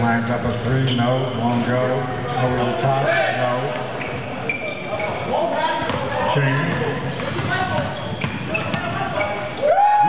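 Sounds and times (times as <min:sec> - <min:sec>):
man talking: 0:00.0 - 0:03.8.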